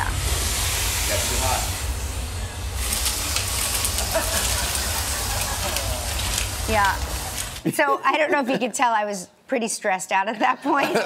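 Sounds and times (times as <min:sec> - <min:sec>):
vacuum cleaner running: 0:00.0 - 0:07.6.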